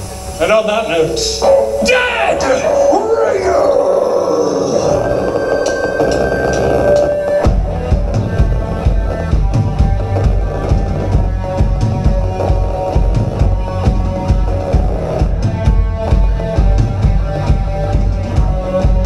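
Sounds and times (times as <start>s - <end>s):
bass guitar: 1.2s - 19.0s
drum kit heavy beat: 5.6s - 19.0s.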